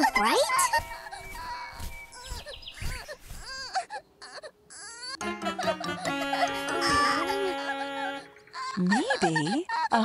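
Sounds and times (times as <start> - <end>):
baby crying: 1.0 - 10.0.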